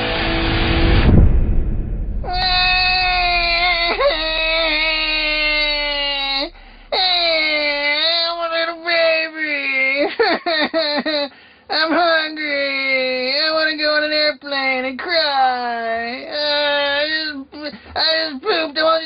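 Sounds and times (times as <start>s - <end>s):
man imitating baby crying: 2.3s - 8.3s, 9.7s - 13.2s.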